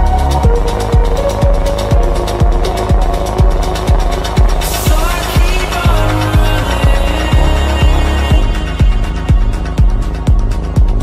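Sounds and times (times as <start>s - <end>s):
held synth notes: 0.0s - 11.0s
kick drum: 0.0s - 11.0s
low bass line: 0.0s - 11.0s
ticking hi-hats: 0.0s - 11.0s.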